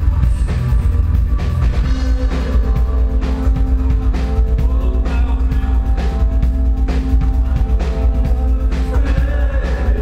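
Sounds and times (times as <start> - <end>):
heavy bass: 0.0 - 10.0.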